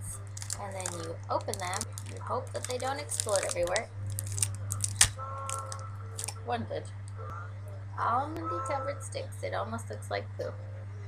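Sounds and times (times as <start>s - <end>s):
candy packet crinkling: 0.1s - 6.4s
packet snapping: 0.2s - 6.4s.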